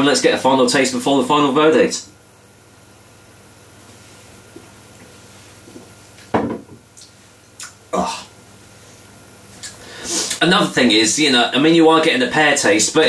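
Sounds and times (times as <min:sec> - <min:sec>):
man swallowing drink: 0:06.9 - 0:08.3
man grunting in disgust: 0:07.9 - 0:08.3.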